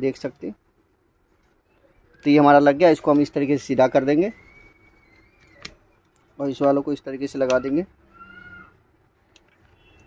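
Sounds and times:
plastic parts clicking: 0:04.4 - 0:07.8, 0:09.2 - 0:09.8
faint cat meow: 0:07.5 - 0:08.8.

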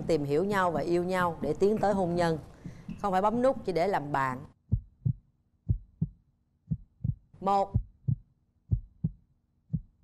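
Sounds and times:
heartbeat thumps: 0:04.6 - 0:10.0.

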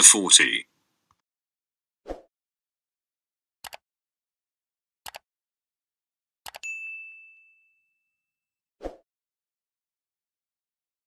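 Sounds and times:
notification bell ding: 0:06.6 - 0:08.1.

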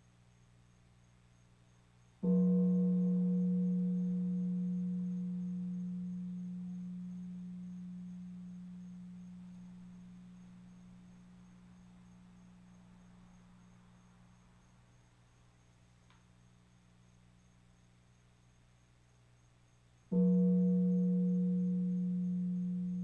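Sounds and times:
hanging gong ringing: 0:02.2 - 0:11.0, 0:20.1 - 0:23.0.

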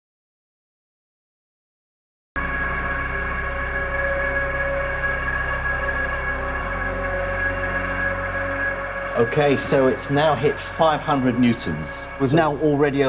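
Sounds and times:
deep bass layer: 0:02.4 - 0:13.0
tense droning background music: 0:02.4 - 0:13.0.

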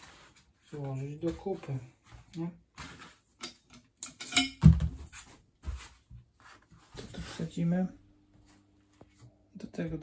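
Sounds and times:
metal parts clicking and clinking: 0:03.4 - 0:04.6.

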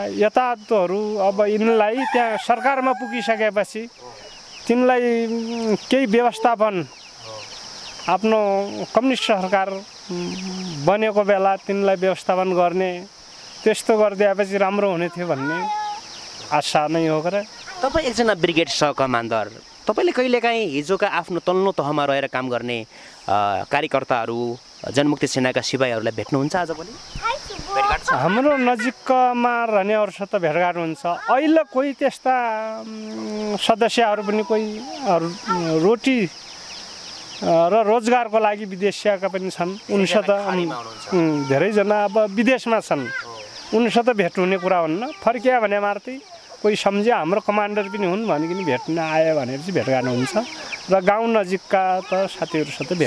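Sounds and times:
man speaking: 0:00.0 - 0:07.5, 0:08.1 - 0:15.7, 0:16.4 - 0:17.5, 0:18.2 - 0:27.0, 0:27.9 - 0:36.4, 0:37.4 - 0:53.0
high-pitched insect chorus: 0:00.0 - 0:53.0
woman talking: 0:17.7 - 0:18.5.

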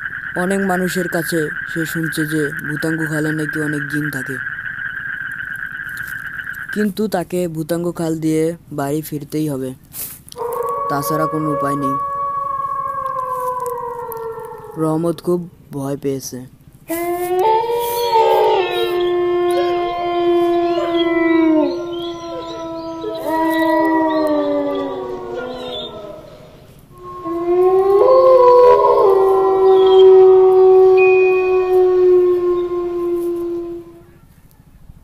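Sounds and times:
dog howling: 0:10.4 - 0:15.1, 0:16.9 - 0:34.2.

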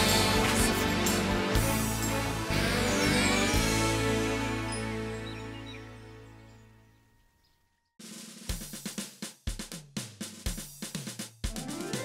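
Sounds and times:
bass drum beat: 0:00.0 - 0:04.2
rising musical glide: 0:00.0 - 0:07.0, 0:11.5 - 0:12.0.

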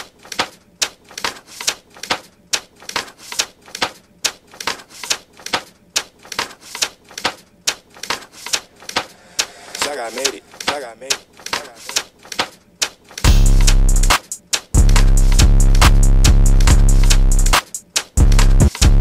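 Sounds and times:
clicking trap beat percussion: 0:08.9 - 0:12.1, 0:13.2 - 0:19.0.

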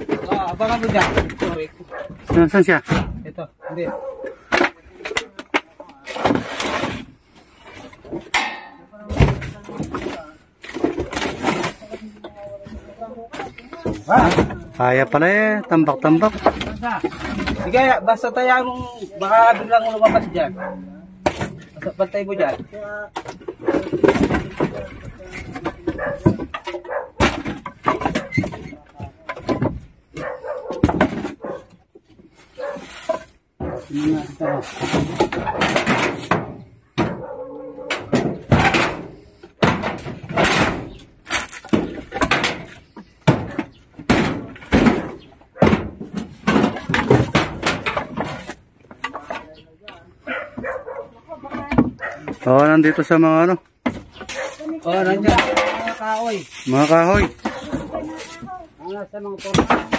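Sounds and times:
scraping and rattling of boards: 0:00.0 - 0:59.9
dog barking: 0:01.9 - 0:02.2, 0:03.6 - 0:04.4, 0:20.4 - 0:21.1, 0:25.9 - 0:27.3, 0:30.1 - 0:31.8, 0:32.6 - 0:32.9, 0:33.6 - 0:34.7, 0:37.1 - 0:38.1, 0:50.2 - 0:51.3, 0:52.0 - 0:53.2, 0:54.3 - 0:54.7.

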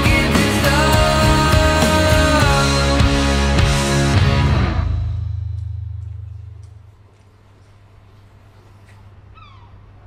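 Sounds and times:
faint low hum: 0:04.8 - 0:10.0
animal call: 0:09.2 - 0:10.0.

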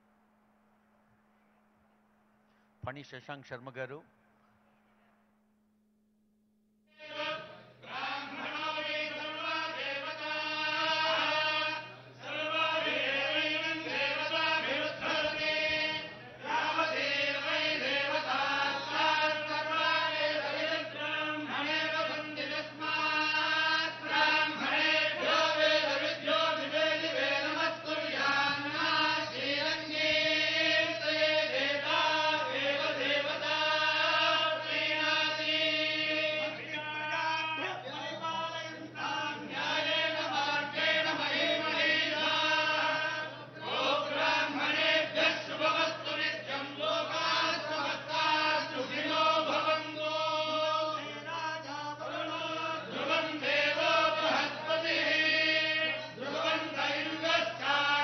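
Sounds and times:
men chanting in unison: 0:07.0 - 0:58.0.

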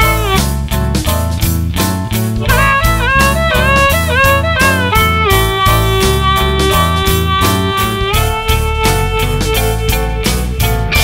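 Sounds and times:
lead electric guitar bending notes: 0:00.0 - 0:00.9, 0:02.3 - 0:11.0
bass guitar: 0:00.0 - 0:11.0
drum beat: 0:00.0 - 0:11.0.

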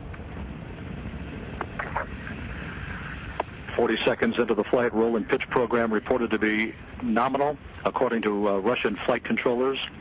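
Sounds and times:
rocket engines rumbling: 0:00.0 - 0:10.0.

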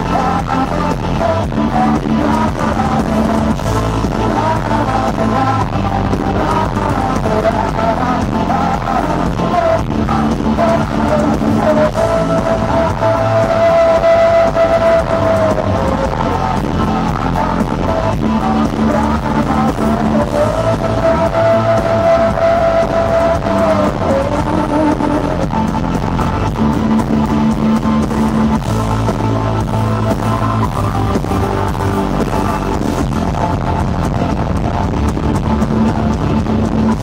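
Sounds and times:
bass guitar: 0:00.0 - 0:37.0
drum kit: 0:00.0 - 0:37.0
electric guitars: 0:00.0 - 0:37.0.

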